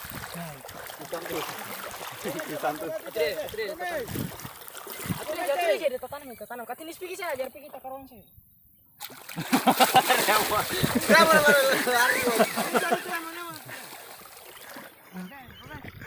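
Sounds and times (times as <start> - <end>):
feet splashing in shallow water: 0.0 - 6.0, 9.0 - 16.0
voices talking: 0.3 - 4.3, 4.9 - 8.3, 9.4 - 16.0.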